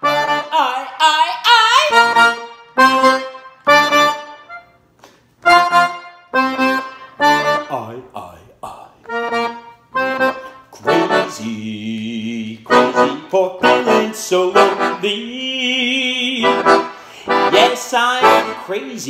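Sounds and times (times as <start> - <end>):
man singing with vibrato: 0.0 - 3.0, 7.5 - 9.2, 10.3 - 19.0
accordion playing short chords: 0.0 - 8.1, 9.0 - 11.6, 12.7 - 15.4, 16.4 - 19.0.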